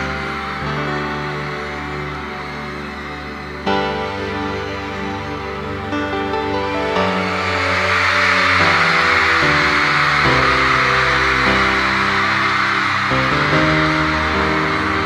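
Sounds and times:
crowd screaming and cheering: 0.0 - 15.0.

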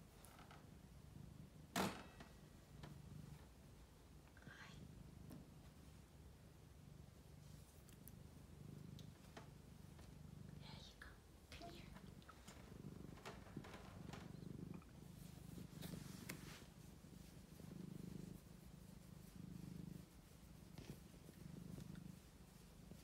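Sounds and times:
cat purring: 0.0 - 23.0.

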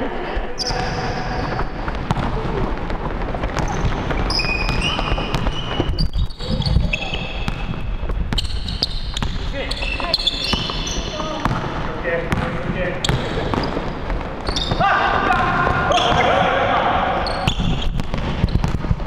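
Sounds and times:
players' voices: 0.0 - 8.1, 9.2 - 17.8
sneaker squeaks: 0.5 - 2.6, 3.5 - 16.5, 17.2 - 18.8
basketball bouncing on wooden floor: 0.6 - 16.3, 17.4 - 19.0.

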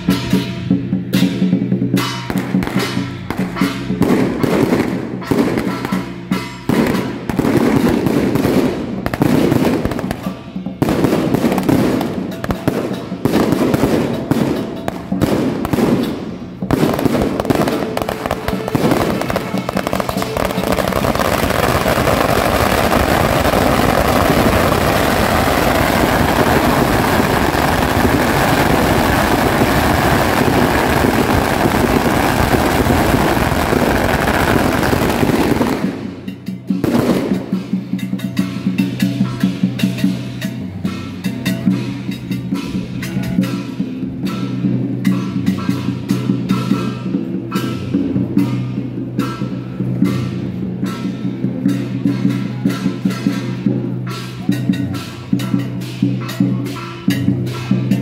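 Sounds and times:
firecrackers crackling: 0.0 - 58.0
hand cymbals clashing: 0.0 - 58.0
procession percussion: 0.0 - 58.0.

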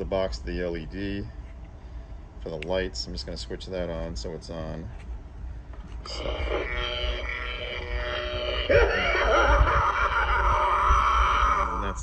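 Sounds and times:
electronic drone: 5.9 - 12.0
person laughing: 6.1 - 12.0.

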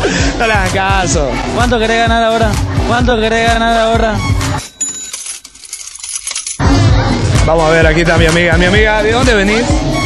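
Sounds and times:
music: 0.0 - 10.0
jingling coins sound effect: 4.6 - 6.6.

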